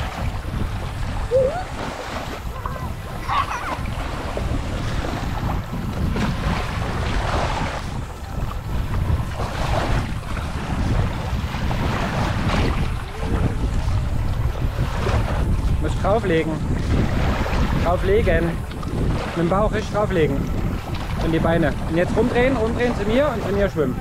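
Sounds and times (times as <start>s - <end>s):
small waves lapping shore: 0.0s - 24.0s
wind buffeting microphone: 0.0s - 24.0s.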